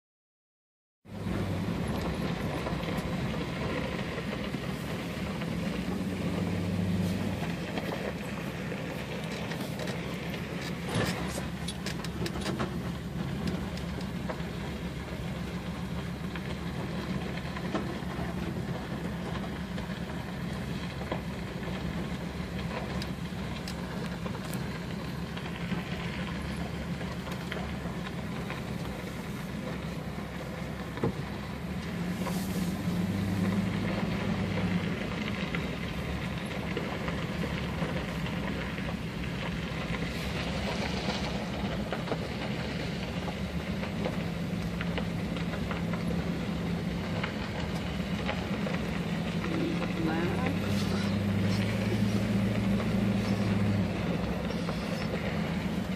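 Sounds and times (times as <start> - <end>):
vehicle engine and tyre noise: 1.0 - 55.9
gravel clicks: 1.1 - 55.9.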